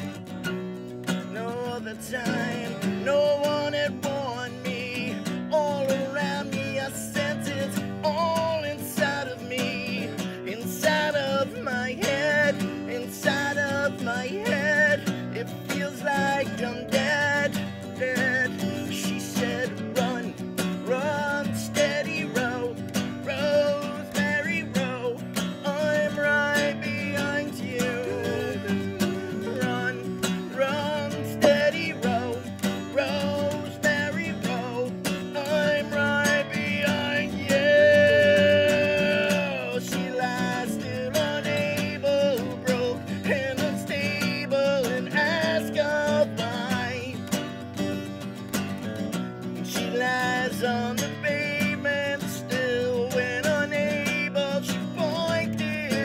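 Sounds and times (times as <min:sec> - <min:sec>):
acoustic guitars strumming chords: 0:00.0 - 0:56.0
sliding guitar melody: 0:00.0 - 0:56.0.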